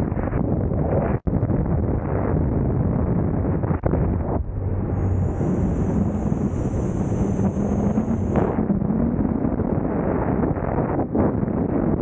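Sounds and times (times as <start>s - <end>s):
wind roaring over microphone: 0.0s - 12.0s.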